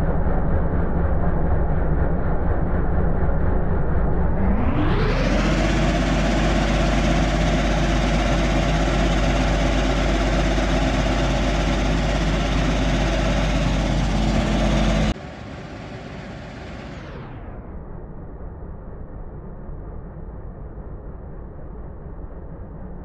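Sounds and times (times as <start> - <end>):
vibrating screening machine drone: 0.0 - 20.6.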